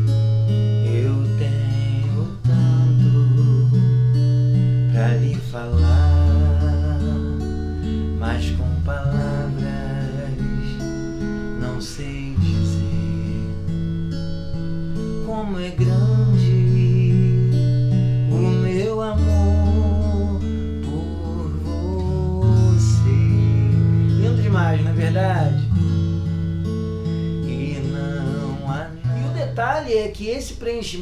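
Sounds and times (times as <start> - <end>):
fingerpicked acoustic guitar: 0.0 - 31.0
man singing softly: 0.7 - 4.2, 4.8 - 13.7, 15.0 - 25.8, 27.4 - 31.0.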